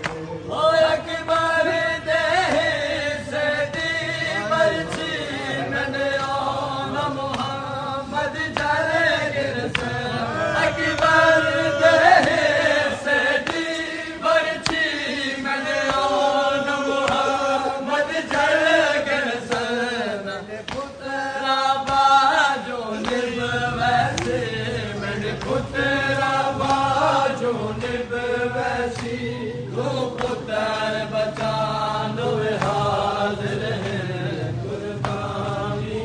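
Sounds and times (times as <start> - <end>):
men chanting in unison: 0.0 - 36.0.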